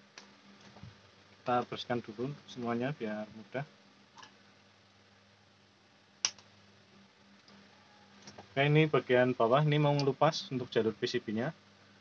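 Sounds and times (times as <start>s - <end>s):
sharp click: 6.2s - 6.5s.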